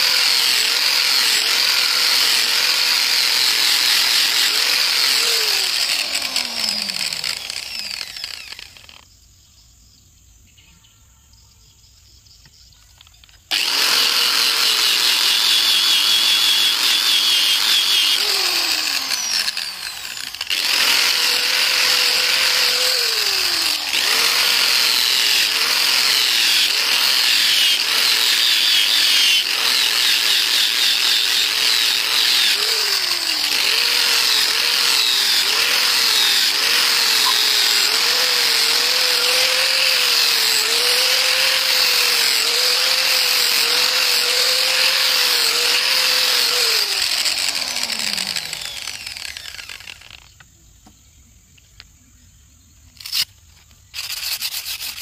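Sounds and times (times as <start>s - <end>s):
angle grinder on steel: 0.0s - 9.0s, 13.5s - 50.3s, 54.0s - 55.0s.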